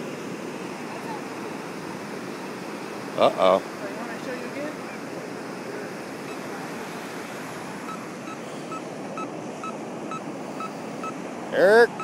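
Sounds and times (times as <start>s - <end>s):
ocean surf: 0.0s - 12.0s
wind: 0.0s - 12.0s
metal detector beeping: 7.8s - 11.2s.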